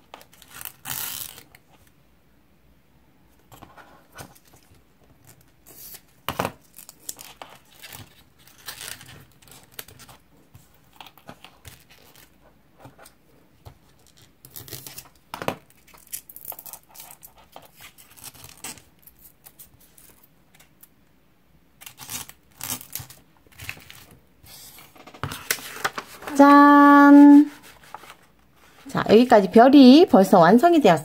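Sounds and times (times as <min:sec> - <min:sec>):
paper rustling and crackling: 0:22.0 - 0:29.0.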